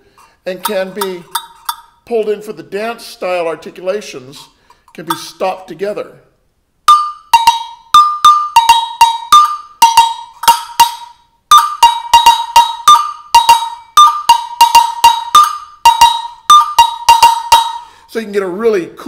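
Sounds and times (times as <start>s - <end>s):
agogo bell struck with drumstick: 6.9s - 17.8s.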